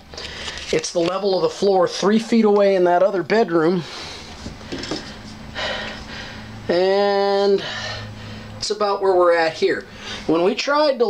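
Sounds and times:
short breath: 0:09.9 - 0:10.3.

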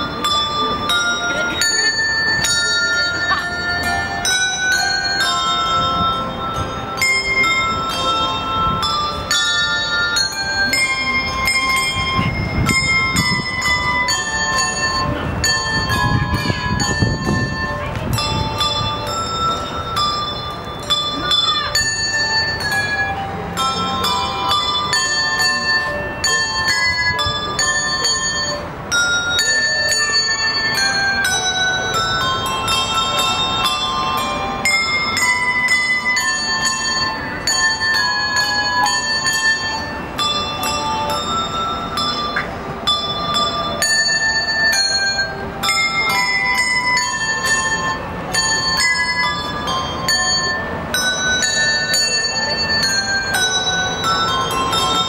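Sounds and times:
handbells ringing: 0:00.0 - 0:55.0.

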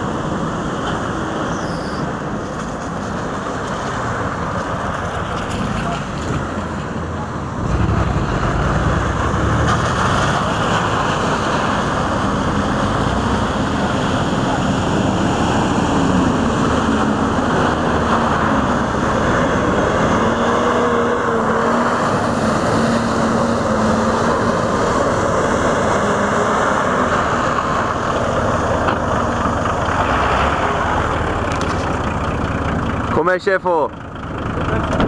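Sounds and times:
tyres churning water and mud: 0:00.0 - 0:35.0
suv engine running under load: 0:02.3 - 0:35.0.

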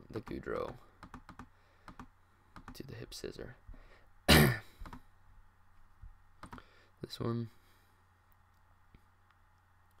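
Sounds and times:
man clearing throat cough: 0:04.3 - 0:04.7.

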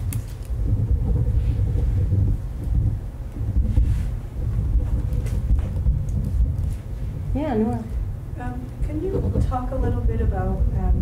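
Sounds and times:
deep uneven rumble: 0:00.0 - 0:11.0.

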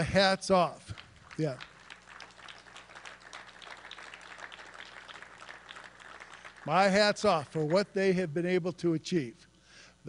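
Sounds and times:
audience applauding: 0:00.8 - 0:07.8.

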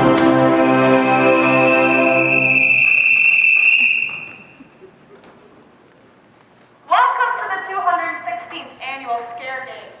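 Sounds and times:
band holding a chord: 0:00.0 - 0:02.7.

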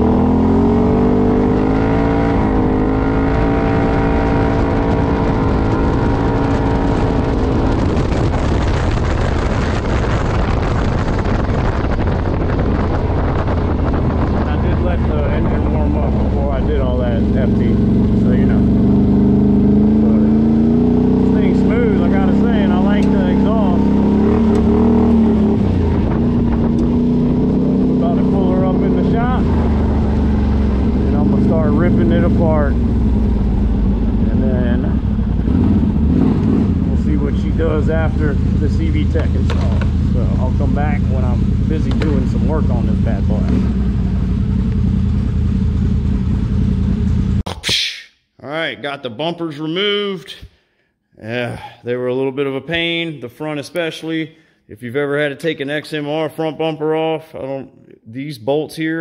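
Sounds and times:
atv engine at high revs: 0:00.0 - 0:09.8, 0:14.1 - 0:47.4.

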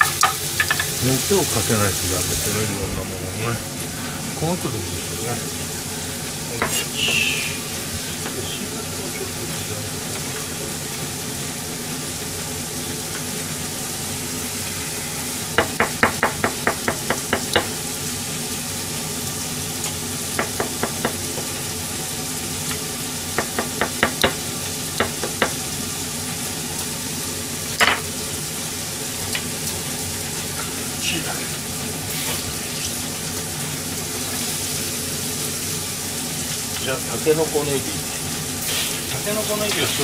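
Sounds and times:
meat sizzling in a pan: 0:00.0 - 0:40.0.

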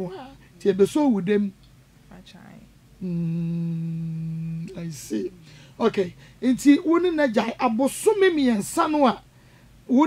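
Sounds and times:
person humming: 0:03.0 - 0:05.5.

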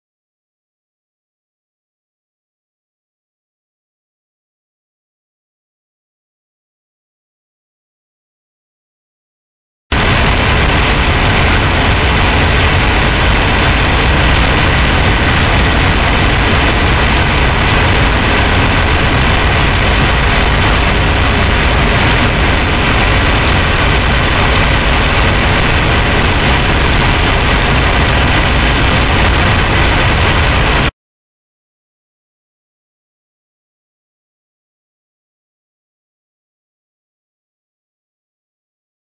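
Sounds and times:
harsh noise music: 0:09.9 - 0:30.9.

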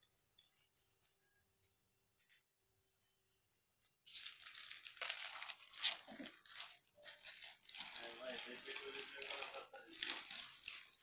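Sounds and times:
beaded necklace rattling and clinking: 0:03.9 - 0:11.0.

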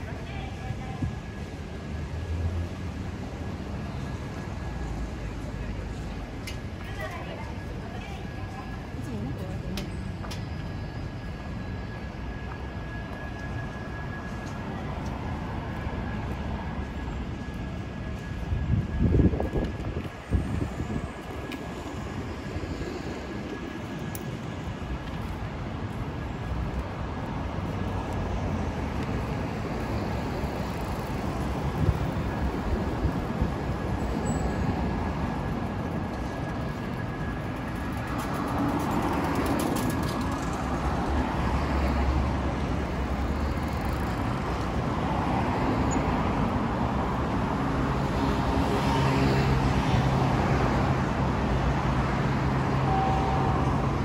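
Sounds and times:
passing traffic: 0:00.0 - 0:54.0.

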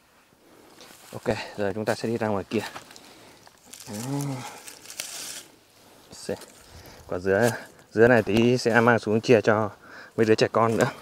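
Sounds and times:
dry rustle of stalks and leaves: 0:00.0 - 0:11.0.

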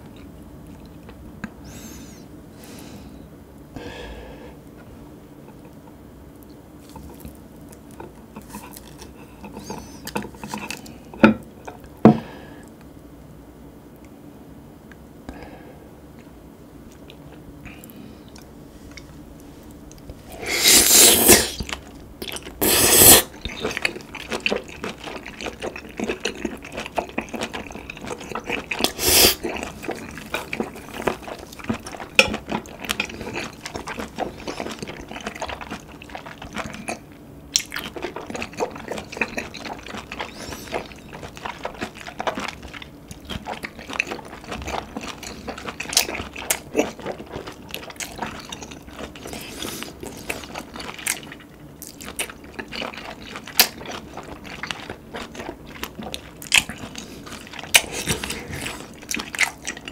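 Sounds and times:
wet chewing: 0:06.4 - 0:11.0, 0:19.8 - 0:59.9
loud wet slurps: 0:20.3 - 0:21.7, 0:22.6 - 0:23.7, 0:28.6 - 0:29.9.

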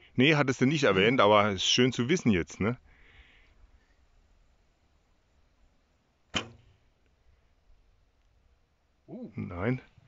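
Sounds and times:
bowstring snap: 0:06.3 - 0:06.7.

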